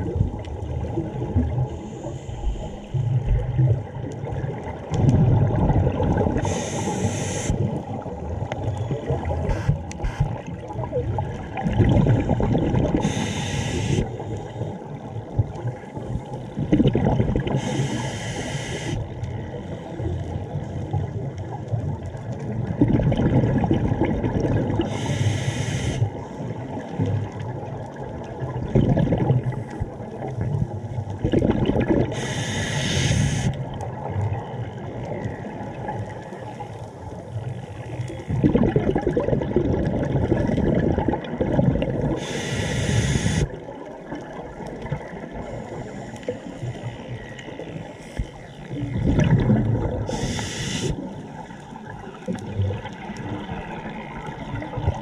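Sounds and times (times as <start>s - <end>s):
bubbles gurgling underwater: 0.0s - 2.0s, 2.6s - 13.3s, 14.0s - 17.9s, 19.0s - 25.1s, 26.0s - 32.3s, 33.6s - 42.4s, 43.4s - 45.8s, 46.4s - 55.0s
regulator air hissing: 6.5s - 7.6s, 13.0s - 14.0s, 17.6s - 19.0s, 24.9s - 26.0s, 32.2s - 33.6s, 42.2s - 43.5s, 50.1s - 51.0s.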